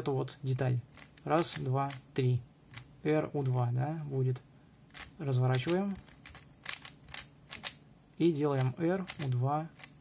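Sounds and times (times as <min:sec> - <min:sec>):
puzzle cube clicking: 0:00.9 - 0:02.1, 0:04.9 - 0:07.8, 0:08.5 - 0:10.0.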